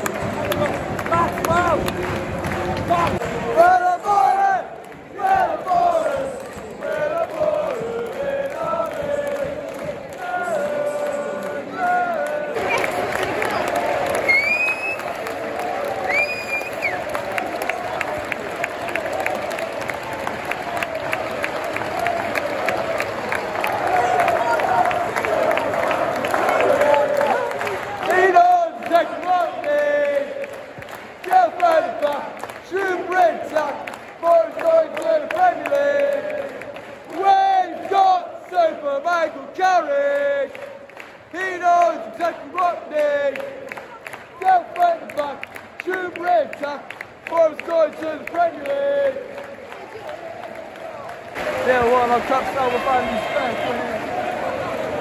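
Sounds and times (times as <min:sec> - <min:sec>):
crowd singing a chant: 0:00.0 - 0:14.2, 0:24.3 - 0:49.4
crowd clapping: 0:00.0 - 0:55.0.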